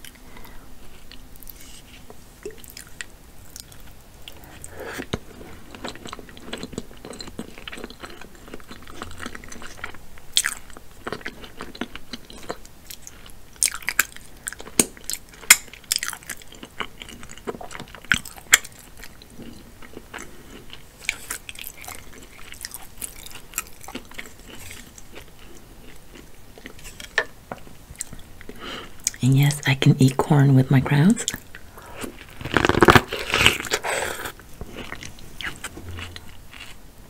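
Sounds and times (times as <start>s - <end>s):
close chewing: 2.4s - 29.2s, 31.3s - 36.8s.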